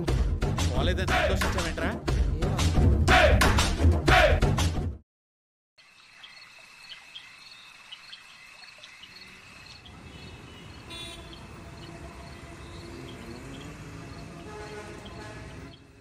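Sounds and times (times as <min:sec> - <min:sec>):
crickets trilling: 0:05.8 - 0:14.8.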